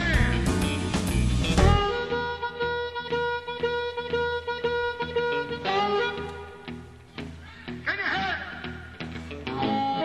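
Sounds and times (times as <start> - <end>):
electric blues band playing: 0.0 - 10.0.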